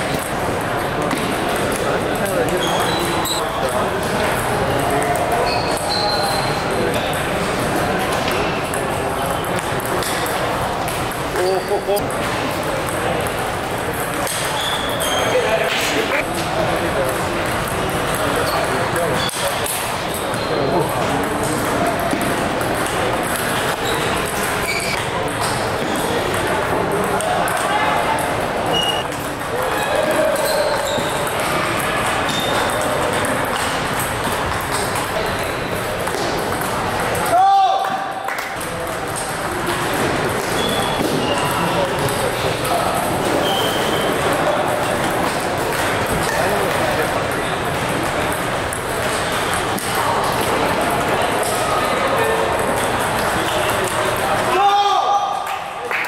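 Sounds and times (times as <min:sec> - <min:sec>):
table tennis balls ticking: 0:00.0 - 0:15.3, 0:16.2 - 0:37.4, 0:38.5 - 0:54.6
babble of many voices: 0:00.0 - 0:56.0.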